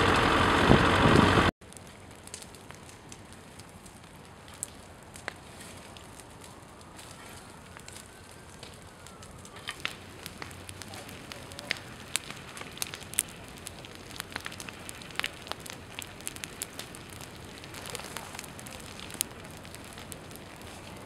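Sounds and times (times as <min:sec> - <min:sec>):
fire hissing: 0:00.0 - 0:21.0
flames crackling and popping: 0:00.0 - 0:21.0.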